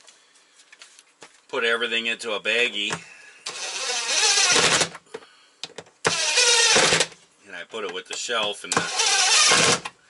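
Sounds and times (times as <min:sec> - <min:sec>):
cordless drill driving screws: 0:03.5 - 0:04.9, 0:06.0 - 0:07.1, 0:08.7 - 0:09.9.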